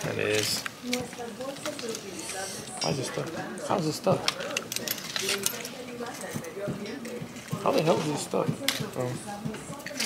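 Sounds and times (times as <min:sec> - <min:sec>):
faint background voices or music: 0:00.8 - 0:10.0.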